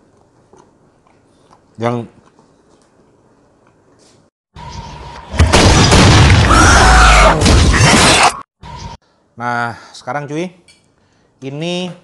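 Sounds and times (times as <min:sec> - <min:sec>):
dense crashing sound effects: 0:05.3 - 0:06.7
heavy boom: 0:05.4 - 0:06.7.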